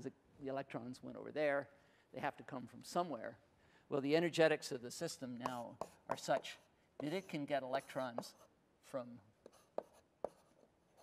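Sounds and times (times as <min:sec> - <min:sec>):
writing taps on a board: 0:05.4 - 0:07.2, 0:09.4 - 0:10.4.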